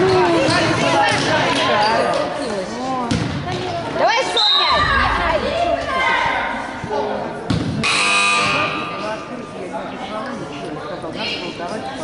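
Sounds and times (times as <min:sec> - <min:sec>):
children chattering and shouting: 0:00.0 - 0:07.5.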